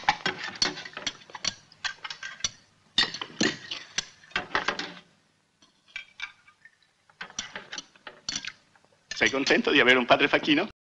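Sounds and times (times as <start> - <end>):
metal spoons clinking on plates: 0.0 - 5.0, 7.2 - 9.7.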